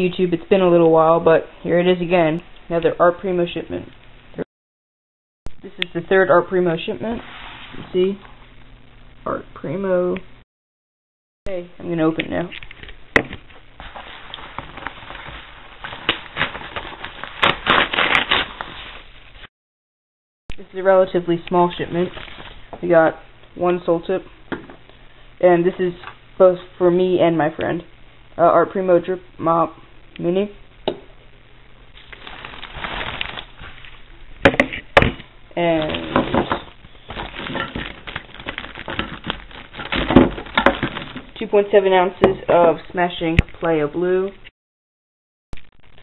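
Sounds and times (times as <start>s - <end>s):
paper ripping and crinkling: 13.8s - 19.5s, 21.9s - 22.7s, 32.0s - 34.0s, 35.8s - 41.4s.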